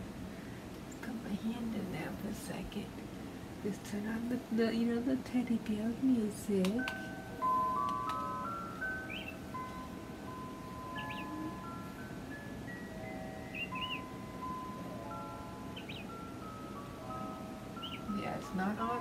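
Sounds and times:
toy lullaby melody: 6.0 - 19.0.

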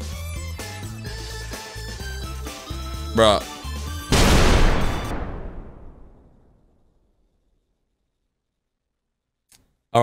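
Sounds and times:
explosion boom rumble: 4.1 - 6.9.

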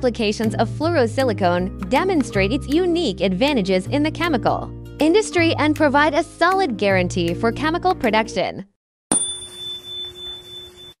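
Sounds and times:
bright bell-like chime: 9.1 - 11.0.

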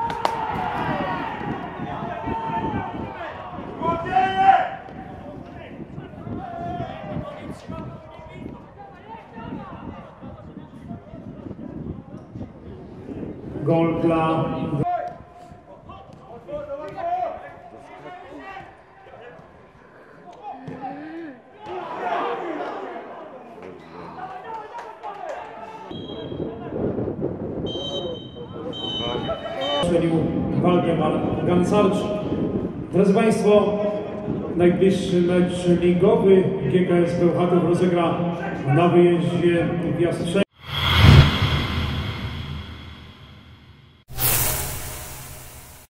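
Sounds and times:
low rumbling swell: 40.5 - 45.6.

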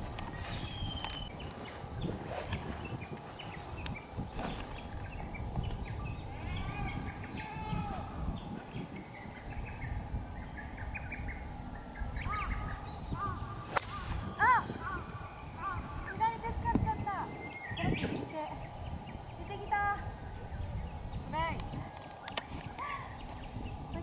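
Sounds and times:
outdoor background noise: 0.0 - 24.0
small birds chirping: 0.2 - 24.0
golf ball struck sharp crack: 13.7 - 14.4.

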